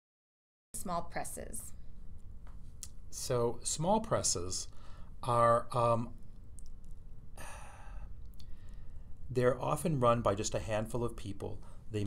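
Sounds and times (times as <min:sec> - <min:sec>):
man speaking: 0:03.1 - 0:06.2, 0:09.3 - 0:12.0
man breathing in: 0:04.7 - 0:05.2, 0:07.4 - 0:09.2.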